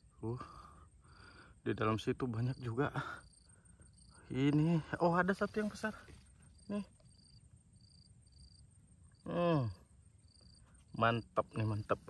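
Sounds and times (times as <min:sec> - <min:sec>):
insect chirping trills: 0:00.0 - 0:12.0.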